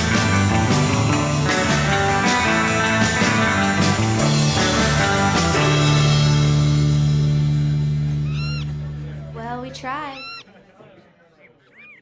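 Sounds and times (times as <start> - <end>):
animal crying: 8.2 - 8.8, 10.1 - 10.5.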